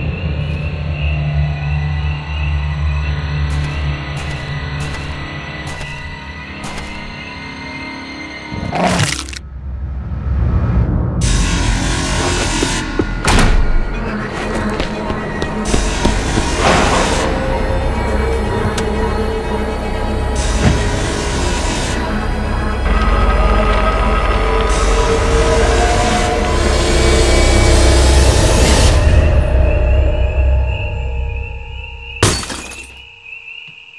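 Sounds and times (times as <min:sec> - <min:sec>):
eerie sustained music: 0:00.0 - 0:08.8, 0:09.5 - 0:33.9.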